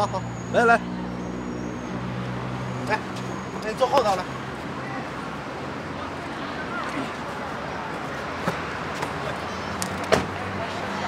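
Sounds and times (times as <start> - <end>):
street traffic engine hum: 0.0 - 11.0.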